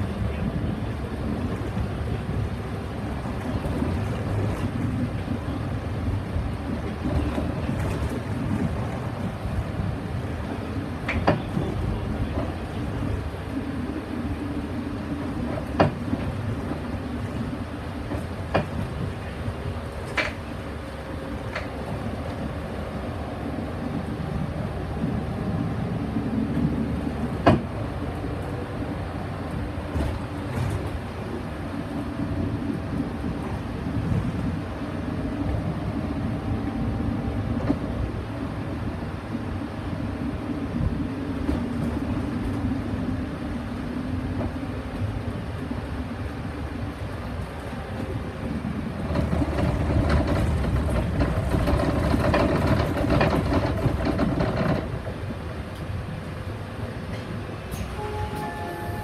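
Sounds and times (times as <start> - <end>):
bus engine and road noise: 0.0 - 59.0.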